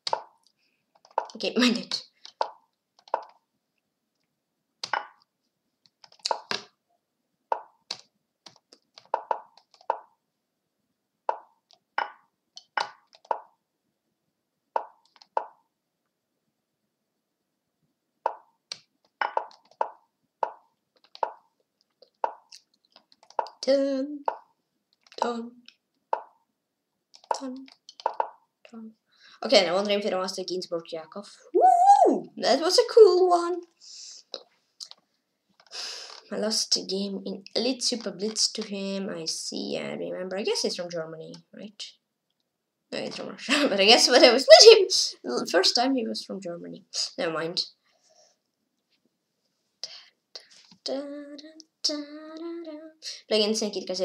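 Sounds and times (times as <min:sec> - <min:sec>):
chess piece move plops: 0:04.8 - 0:05.2, 0:06.1 - 0:06.7, 0:19.1 - 0:22.6.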